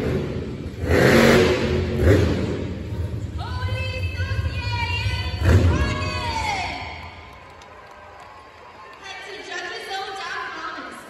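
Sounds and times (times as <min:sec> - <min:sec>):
monster truck engine easing off: 0:00.0 - 0:03.4.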